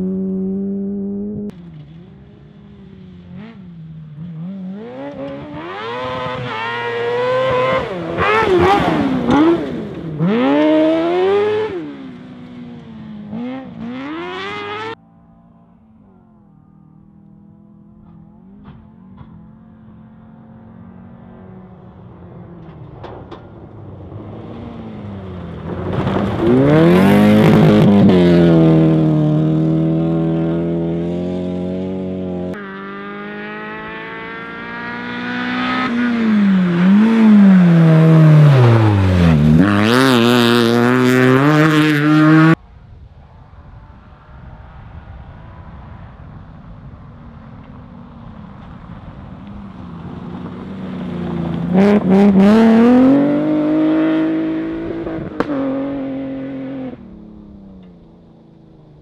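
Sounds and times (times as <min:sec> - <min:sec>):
rally car engine at full throttle: 0:00.0 - 0:59.0.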